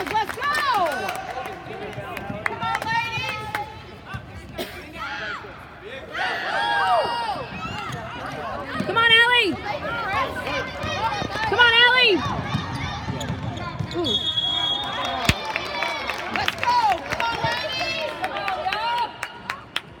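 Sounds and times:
sneakers squeaking: 12.4s - 14.6s
referee's whistle: 13.9s - 15.4s.

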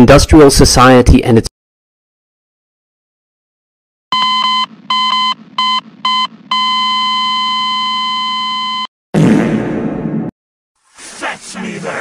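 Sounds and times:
electronic beeps: 4.1s - 8.9s.

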